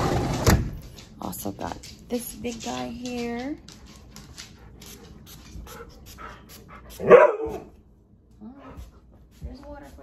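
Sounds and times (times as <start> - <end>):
dog panting: 2.5 - 7.2.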